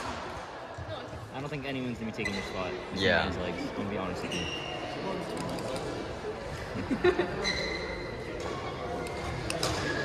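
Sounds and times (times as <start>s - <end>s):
spectators' indistinct voices: 0.0s - 10.0s.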